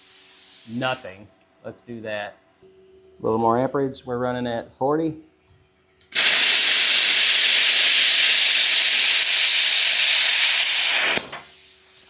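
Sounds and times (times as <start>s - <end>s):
plasma arc hissing: 0.0s - 1.2s, 6.1s - 12.0s
quiet hiss of air: 0.0s - 2.3s.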